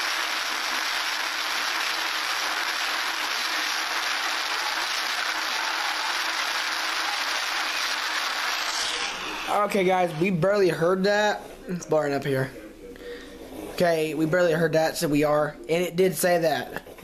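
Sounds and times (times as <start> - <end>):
steady static hiss: 0.0 - 8.7.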